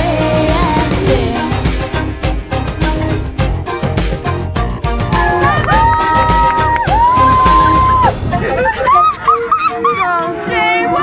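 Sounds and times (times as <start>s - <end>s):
young women squealing and laughing: 5.2s - 10.1s.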